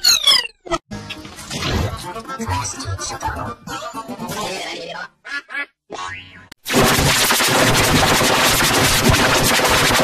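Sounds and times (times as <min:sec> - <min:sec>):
cartoon music and sound effects: 0:00.0 - 0:09.2
loud distorted noise blast: 0:06.7 - 0:10.0.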